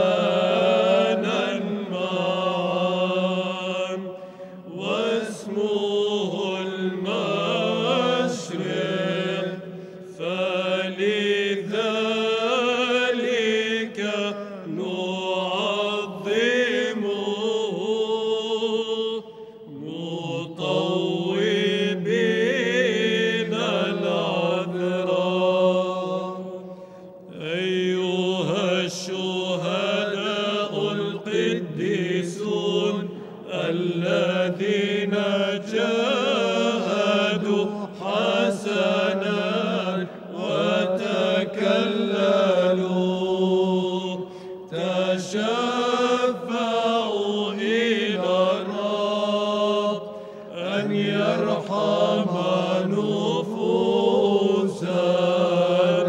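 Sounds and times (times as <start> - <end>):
liturgical chant singing: 0.0 - 56.0.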